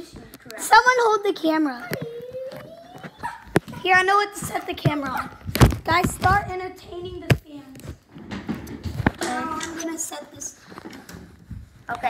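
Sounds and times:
child's rising vocal cry: 0:01.9 - 0:03.5.

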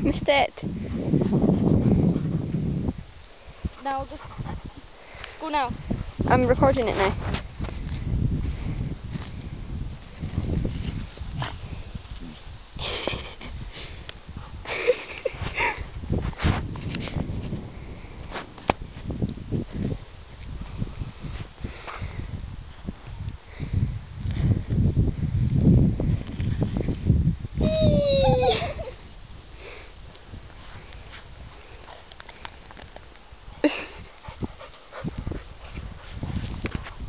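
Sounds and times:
dog rustling through grass: 0:00.8 - 0:17.4.

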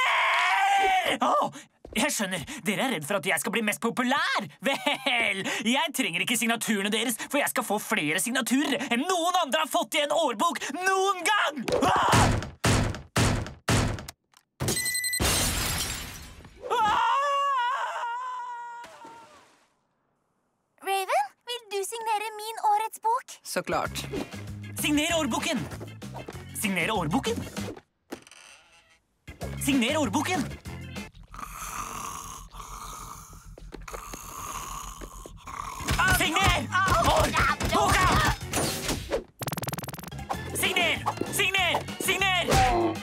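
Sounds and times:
cartoon crash with glass shattering: 0:14.6 - 0:16.5
cartoon character snoring: 0:31.3 - 0:35.9.

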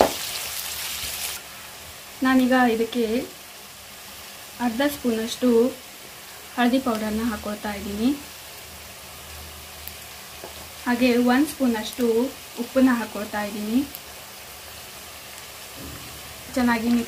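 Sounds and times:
onions sizzling in oil: 0:00.0 - 0:17.0.

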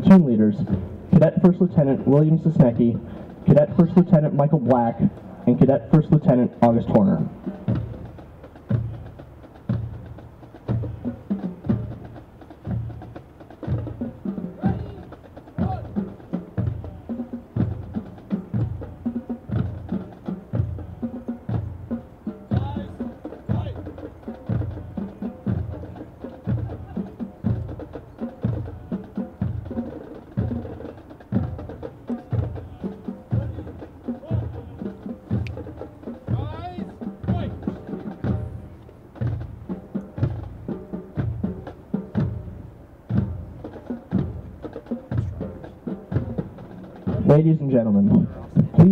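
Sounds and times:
bass drum march beat: 0:00.0 - 0:48.9
light percussion: 0:00.0 - 0:48.9.

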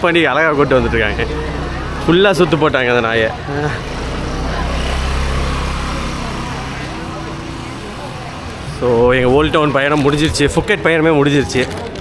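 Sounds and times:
road vehicle rumble: 0:00.0 - 0:12.0.

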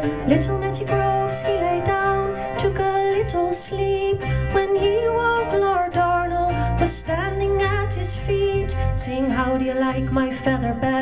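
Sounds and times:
plucked-string accompaniment: 0:00.0 - 0:11.0
woman singing ballad: 0:00.0 - 0:11.0.

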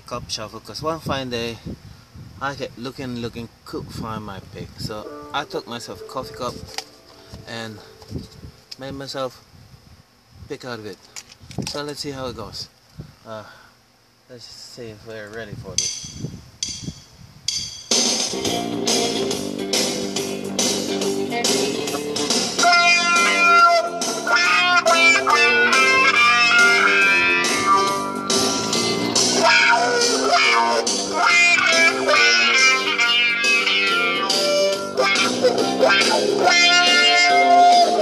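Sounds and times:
guitar string clicks and noises: 0:06.3 - 0:08.9, 0:21.8 - 0:23.6
electric guitar blues shuffle: 0:18.3 - 0:38.0.

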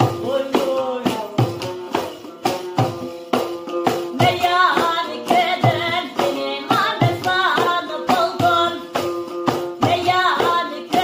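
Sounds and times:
frame drum strokes: 0:00.0 - 0:11.0
plucked lute: 0:00.0 - 0:11.0
woman singing ornamented melody: 0:04.1 - 0:09.0, 0:09.8 - 0:11.0.

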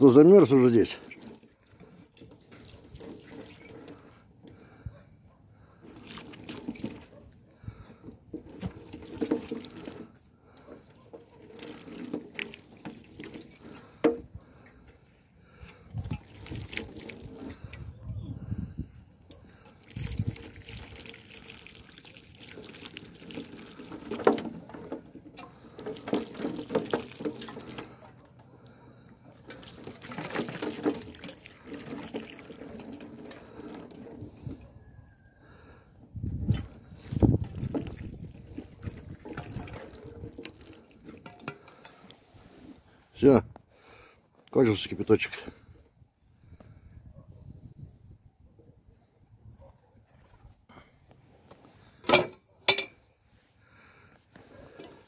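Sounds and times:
water splashing and trickling: 0:00.0 - 0:45.7.

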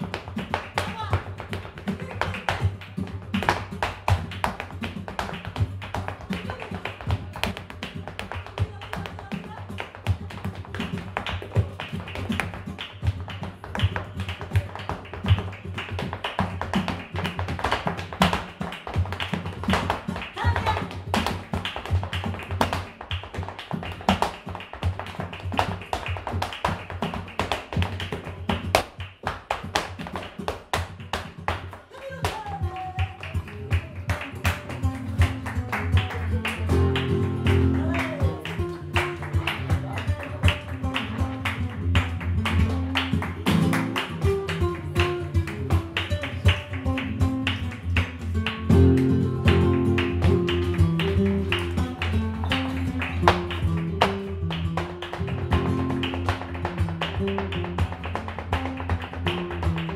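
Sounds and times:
dance shoes striking wooden floor: 0:00.0 - 0:33.9, 0:36.7 - 0:59.9
flamenco guitar: 0:00.0 - 0:59.9.

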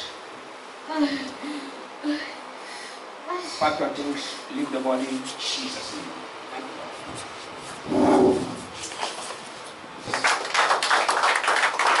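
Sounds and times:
hands clapping: 0:10.1 - 0:12.0.

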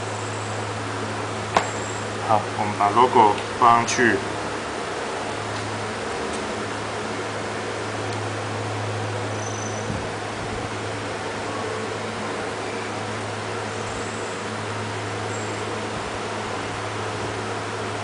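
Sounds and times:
constant low hum: 0:00.0 - 0:18.0.

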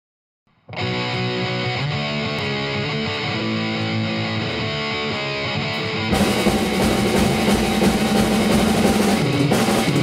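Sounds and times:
recorded rock song: 0:00.5 - 0:10.0
drum kit played live: 0:06.0 - 0:10.0.

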